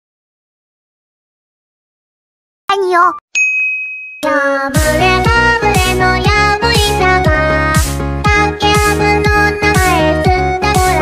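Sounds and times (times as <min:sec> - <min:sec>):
bright electronic ding: 0:03.4 - 0:04.3.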